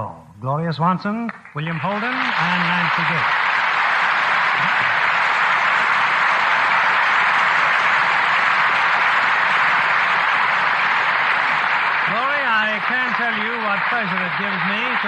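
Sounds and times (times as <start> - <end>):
audience applauding: 1.6 - 15.0.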